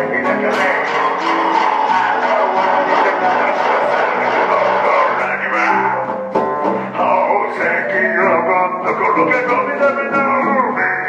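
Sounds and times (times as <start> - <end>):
strummed string instrument: 0.0 - 11.0.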